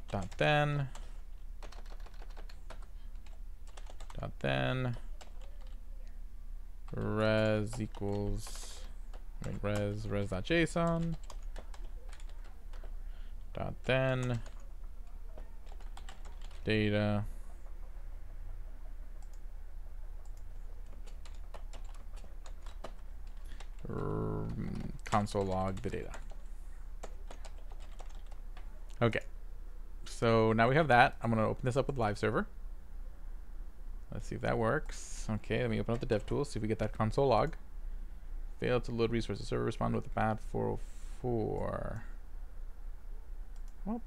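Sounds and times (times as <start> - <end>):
steady low hum: 0.0 - 44.0
computer keyboard keystrokes: 1.6 - 4.2, 10.9 - 12.9, 15.6 - 16.6, 20.2 - 23.8, 27.0 - 28.4.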